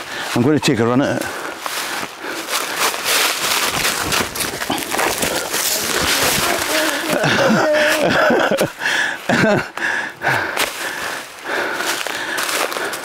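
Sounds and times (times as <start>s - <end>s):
leaves crunching and rustling: 0.8s - 8.1s, 11.8s - 13.0s
person grunting with effort: 4.6s - 8.5s
person laughing: 4.6s - 10.4s.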